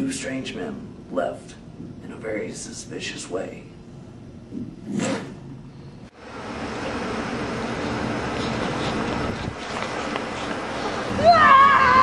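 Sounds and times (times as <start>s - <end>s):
outdoor rushing background noise: 0.0s - 12.0s.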